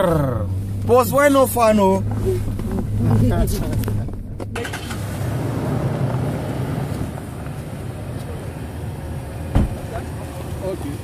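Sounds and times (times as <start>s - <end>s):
car engine idling: 0.0s - 11.0s
sharp thump: 9.5s - 9.8s.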